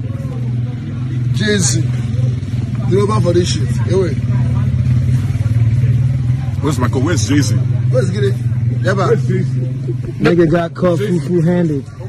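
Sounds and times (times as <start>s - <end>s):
loud low engine drone: 0.0s - 12.0s.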